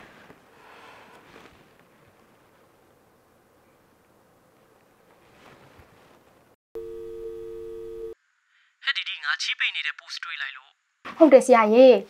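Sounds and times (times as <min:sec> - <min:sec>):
soft rustle: 0:00.0 - 0:06.6
two-note telephone call tone: 0:06.8 - 0:08.2.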